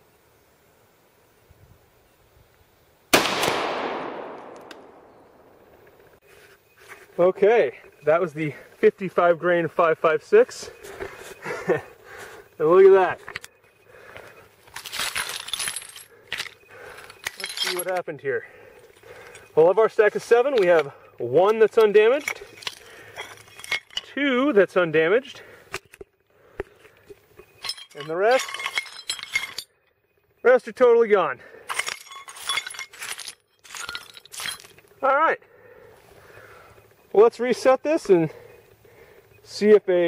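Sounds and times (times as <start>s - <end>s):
ceramic tile pieces clinking: 14.7s - 18.0s, 21.6s - 24.1s, 27.6s - 29.7s, 31.7s - 34.8s.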